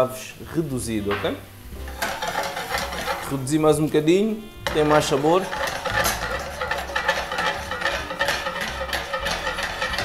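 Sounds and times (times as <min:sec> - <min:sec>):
food sizzling in a frying pan: 0:00.0 - 0:10.0.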